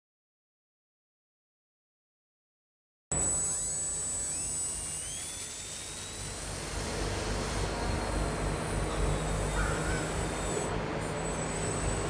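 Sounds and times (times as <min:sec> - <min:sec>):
electric motor and propeller whine: 0:03.1 - 0:12.0.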